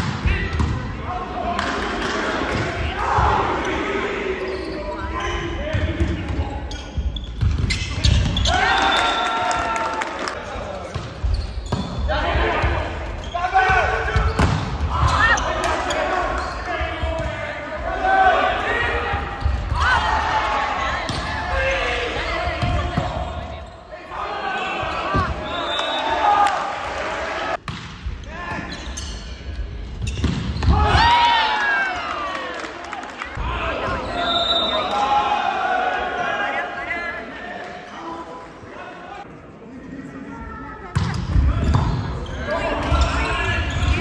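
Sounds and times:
players shouting: 0.1 - 6.1, 8.0 - 10.9, 12.0 - 27.6, 30.6 - 38.0
ball bouncing on court: 5.7 - 8.5, 14.1 - 15.8, 27.6 - 28.2, 29.9 - 31.0, 40.9 - 42.1
volleyball hits: 30.0 - 31.2.

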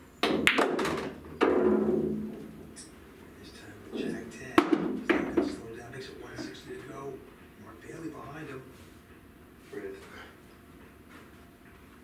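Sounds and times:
ball knocking into pocket: 0.2 - 2.4, 4.6 - 5.6
pool balls cracking together: 0.2 - 2.6.

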